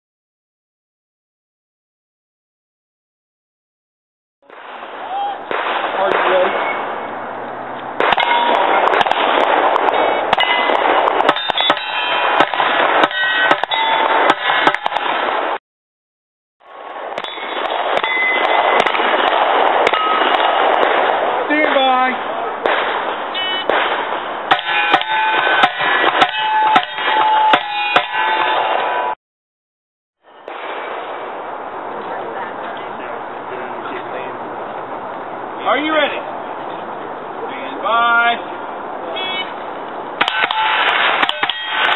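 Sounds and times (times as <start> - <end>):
loud steady background noise: 4.4 - 15.6, 16.6 - 29.2, 30.2 - 41.9
steel targets ringing: 5.5 - 7.1, 8.0 - 15.3, 17.2 - 19.0, 19.9 - 20.6, 23.3 - 29.2, 40.2 - 41.9
rapid rifle shots: 8.0 - 15.6, 17.2 - 21.8.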